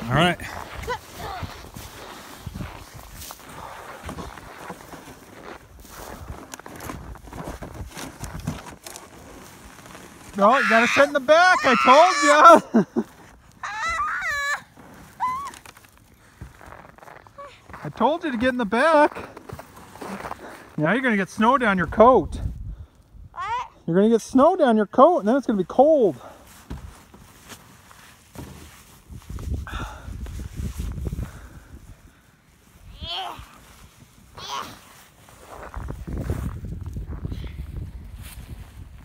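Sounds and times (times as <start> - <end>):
snow crunching and scuffing: 0.0 - 22.0, 25.1 - 39.0
child squealing: 10.4 - 12.6, 13.6 - 15.6, 23.4 - 23.8, 34.4 - 34.8.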